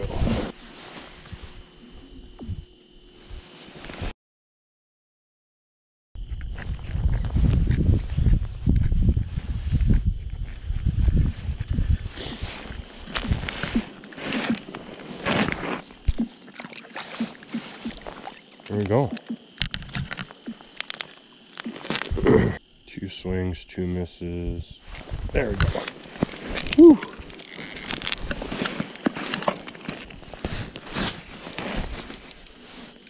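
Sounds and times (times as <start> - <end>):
rustling handling noise on microphone: 0.0 - 4.1, 6.8 - 16.2, 24.8 - 33.0
crackles: 11.3 - 22.6, 24.8 - 33.0.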